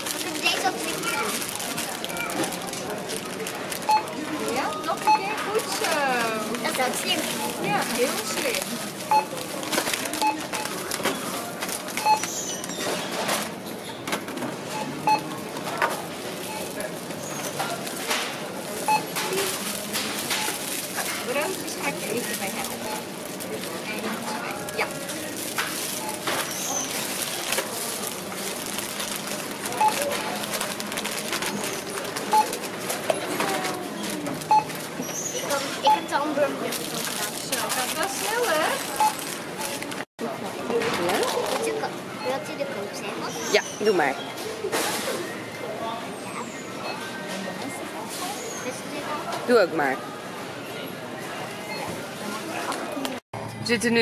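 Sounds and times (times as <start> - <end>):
plastic bags crinkling: 0.0 - 12.0, 18.7 - 35.0, 36.6 - 40.0
short scanner beeps: 3.9 - 4.1, 5.0 - 5.4, 9.1 - 9.3, 12.0 - 12.3, 14.7 - 15.3, 18.9 - 19.2, 34.5 - 34.7, 35.8 - 36.2.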